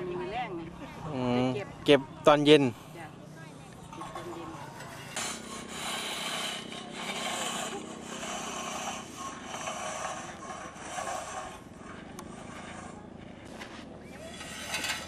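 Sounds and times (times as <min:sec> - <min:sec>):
rakes scraping through rice grain: 0:04.2 - 0:15.0.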